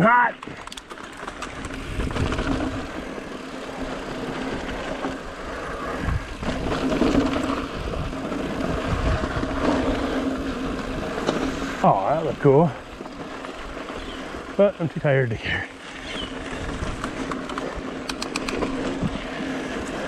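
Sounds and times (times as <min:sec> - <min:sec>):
bike rattling and knocking: 0:00.4 - 0:05.4, 0:06.0 - 0:20.0
bike tyres crunching on dirt: 0:00.9 - 0:20.0
wind rumble on microphone: 0:01.2 - 0:03.2, 0:04.4 - 0:14.5, 0:16.1 - 0:20.0.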